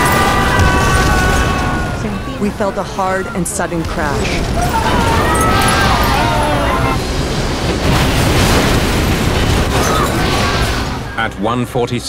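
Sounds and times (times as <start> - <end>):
airliner crash rumble: 0.0 - 11.9.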